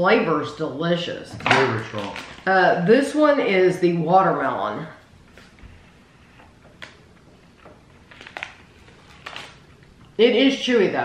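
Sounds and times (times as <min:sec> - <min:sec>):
plastic bag crinkling: 0:01.4 - 0:02.8, 0:06.5 - 0:10.2.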